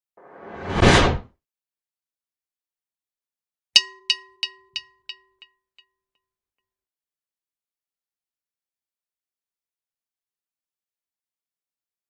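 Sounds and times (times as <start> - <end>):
whoosh: 0.2 - 1.3.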